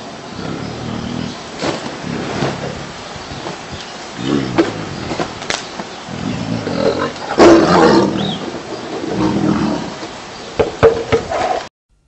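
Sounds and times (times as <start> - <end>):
tiger roaring: 0.3 - 3.1, 4.2 - 5.4, 6.1 - 10.0.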